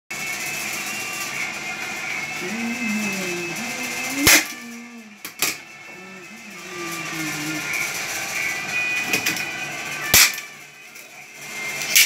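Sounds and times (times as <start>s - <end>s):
electric fan whirring: 0.1s - 12.0s.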